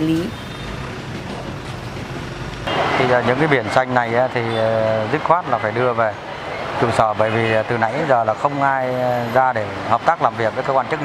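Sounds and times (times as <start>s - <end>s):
street noise: 0.0s - 11.0s
vehicle engine humming: 0.0s - 11.0s.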